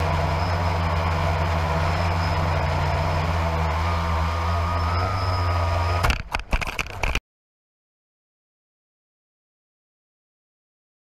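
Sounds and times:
vehicle engine running: 0.0 - 7.2.

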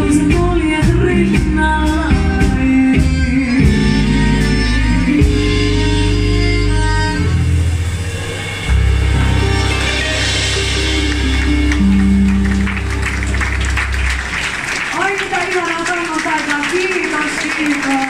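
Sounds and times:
live band playing: 0.0 - 18.0
audience voices: 7.8 - 18.0
audience applause: 9.7 - 18.0.

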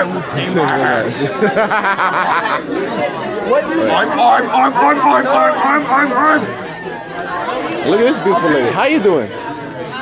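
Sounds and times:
people chattering: 0.0 - 10.0.

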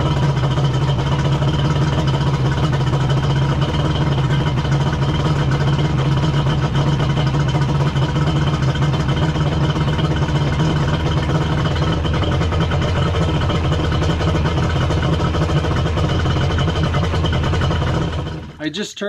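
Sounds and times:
jet ski engine idling: 0.0 - 19.0.

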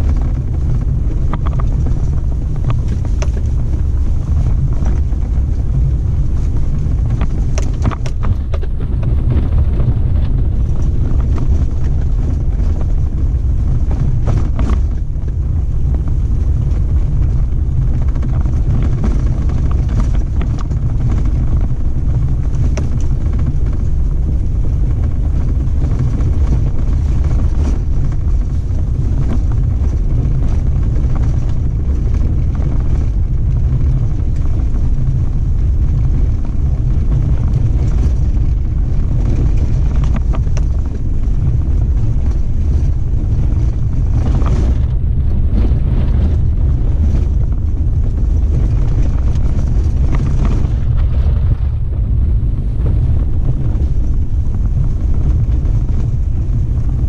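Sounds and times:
off-road vehicle driving on dirt: 0.0 - 57.0
small knocks and rattles: 6.4 - 13.0.

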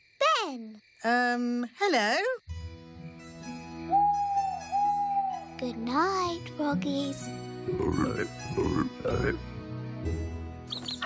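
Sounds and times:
soft background music: 2.4 - 11.0
owl hooting: 3.8 - 5.6.

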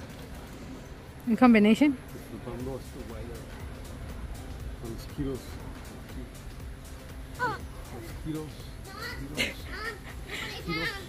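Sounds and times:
children calling and squealing: 8.8 - 11.0.

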